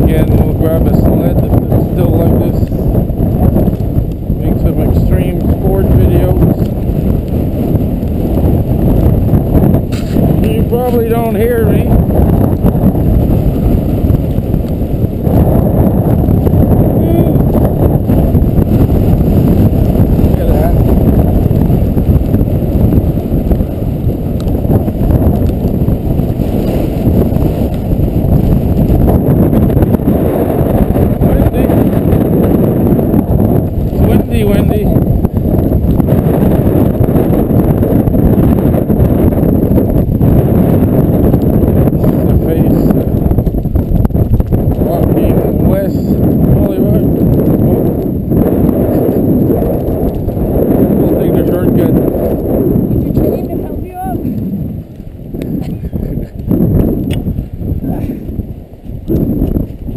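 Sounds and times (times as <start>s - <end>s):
wind buffeting microphone: 0.0s - 59.9s.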